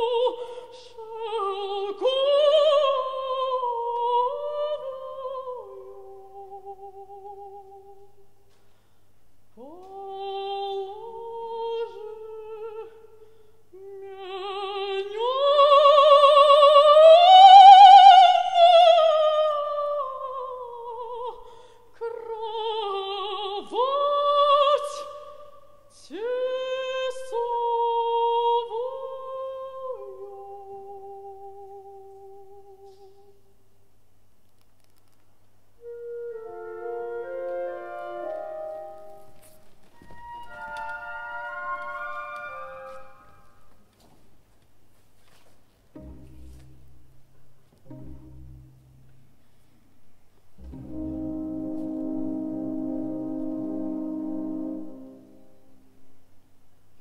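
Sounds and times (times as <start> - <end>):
woman singing unaccompanied: 0.0 - 8.2, 9.6 - 33.4
orchestra playing brass chords: 50.6 - 55.6.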